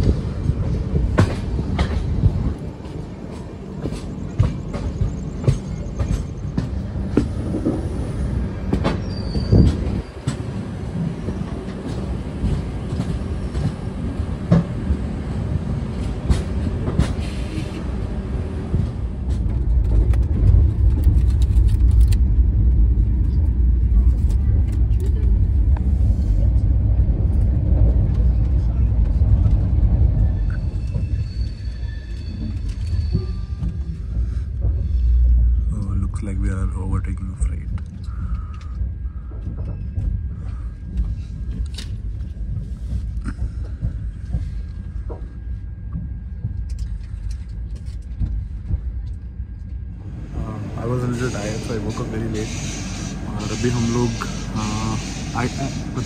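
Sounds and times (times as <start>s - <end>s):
train wheels clicking over rail joints: 0.0s - 23.6s
train low rumble: 0.0s - 56.0s.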